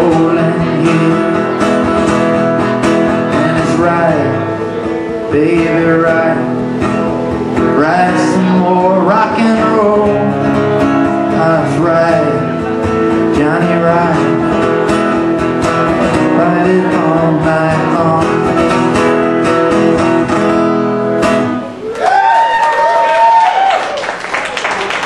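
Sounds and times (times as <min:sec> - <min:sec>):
acoustic guitar strumming: 0:00.0 - 0:21.8.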